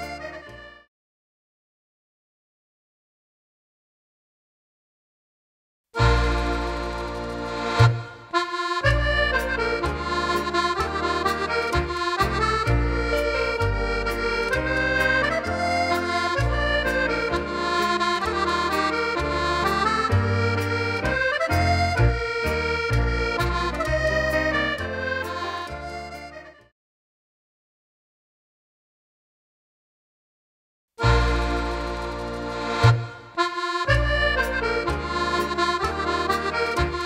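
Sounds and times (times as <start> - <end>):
accordion dance music: 0.0 - 0.9, 6.0 - 26.7, 31.0 - 37.0.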